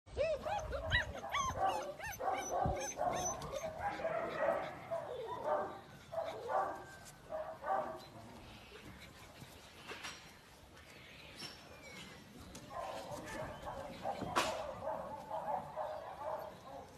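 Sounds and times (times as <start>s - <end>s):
puppies yipping and barking: 0.1s - 8.1s.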